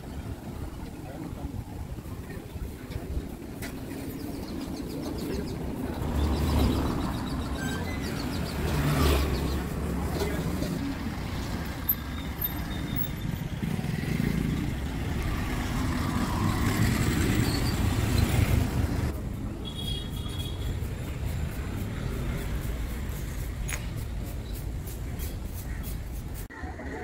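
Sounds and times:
cars passing: 4.5 - 19.7, 20.5 - 25.1.

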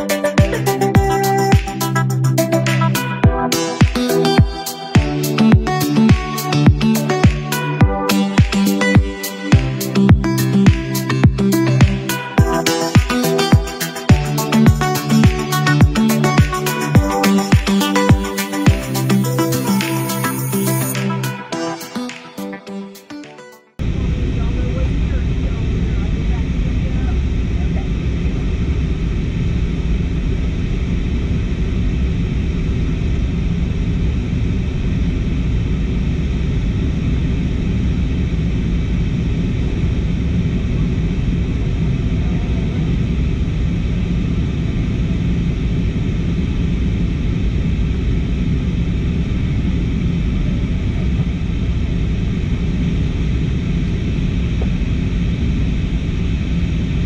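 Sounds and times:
jet airliner cabin noise: 23.8 - 57.0.

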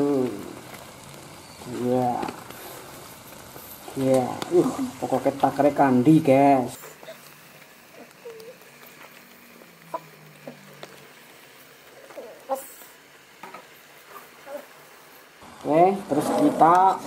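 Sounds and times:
meat sizzling in a wok: 0.0 - 17.0.

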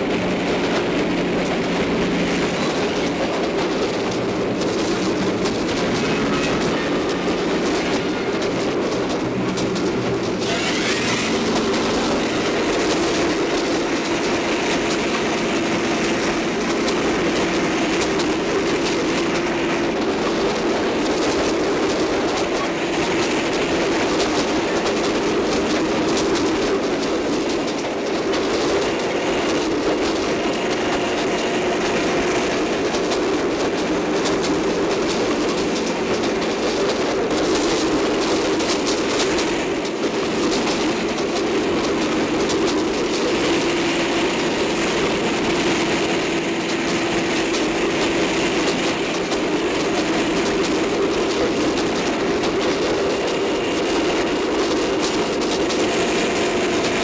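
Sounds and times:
train rumbling: 0.0 - 57.0.

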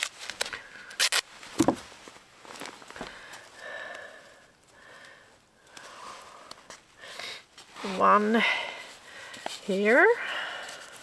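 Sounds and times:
tape ripping: 0.0 - 1.8
tape rustling: 0.0 - 3.5.

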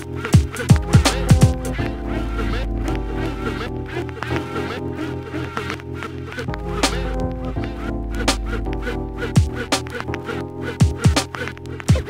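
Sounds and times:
gliding sampled sounds: 0.0 - 12.0
hip hop drums: 0.0 - 12.0
deep bass line: 0.7 - 4.3, 6.5 - 10.2.

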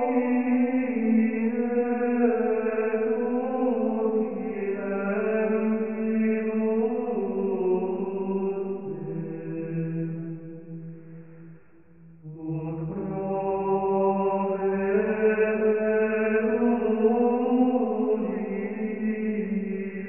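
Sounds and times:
slow chanted singing: 0.0 - 20.0.

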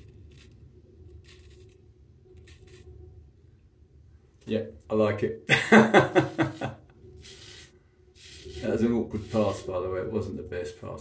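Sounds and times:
razor scraping stubble: 0.0 - 3.0, 6.4 - 9.9.

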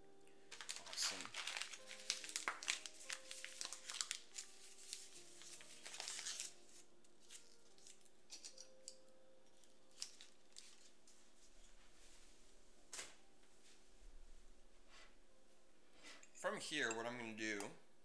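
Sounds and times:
faint background music: 0.0 - 18.0
food packet crinkling: 0.5 - 8.1.

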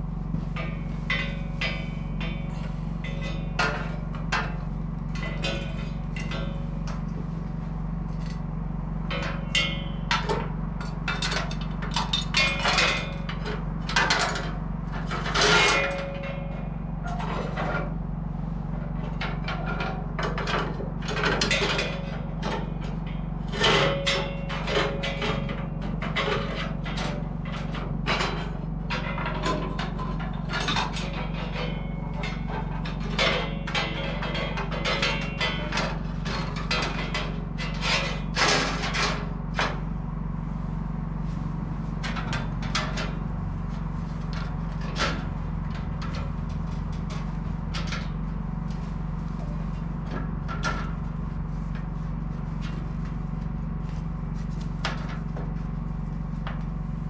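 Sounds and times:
steady low hum: 0.0 - 57.0
metal clanks and rattles: 0.3 - 18.0, 18.8 - 39.9, 42.0 - 56.8.

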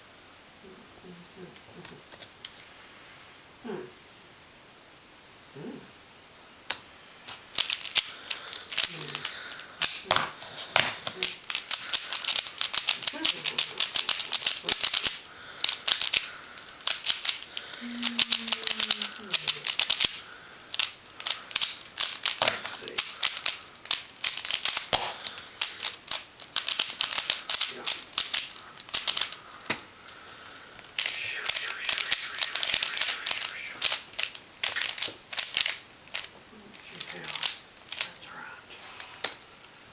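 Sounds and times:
puzzle cube clicking: 6.7 - 38.3.

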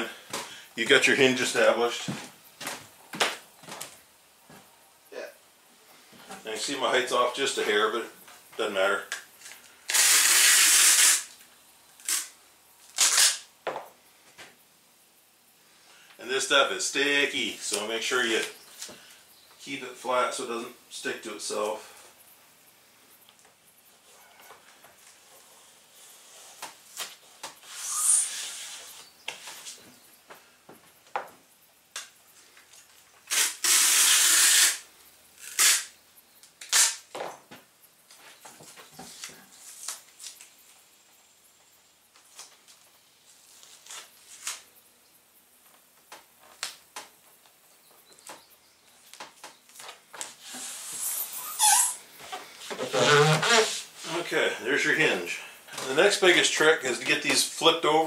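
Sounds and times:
tape tearing hisses: 9.0 - 13.5, 25.0 - 29.8, 32.0 - 37.2, 39.0 - 40.8, 42.2 - 44.7, 49.0 - 54.3
packing tape ripping off roll: 9.1 - 11.4, 12.0 - 13.5, 26.4 - 29.6, 33.2 - 37.2, 43.5 - 44.7, 49.8 - 52.0, 52.8 - 53.9.

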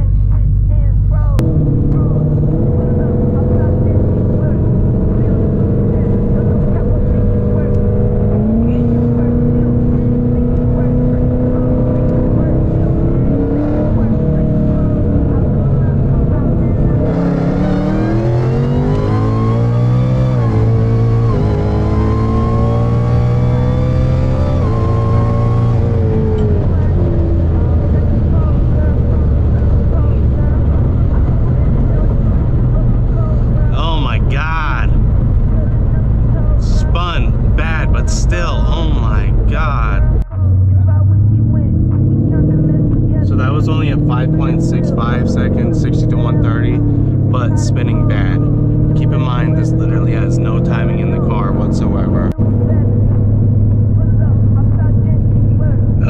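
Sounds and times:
car engine accelerating from cabin: 0.0 - 56.0
high whine: 0.0 - 56.0.

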